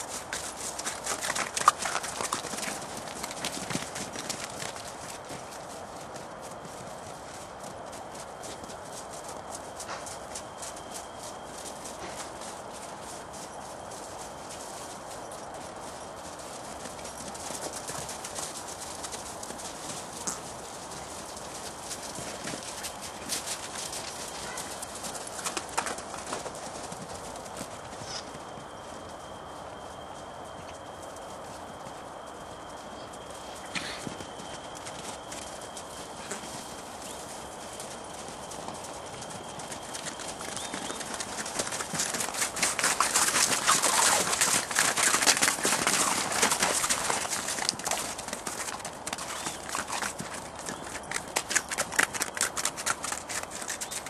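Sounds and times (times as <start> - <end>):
pony hooves clip-clopping: 0.0 - 54.0.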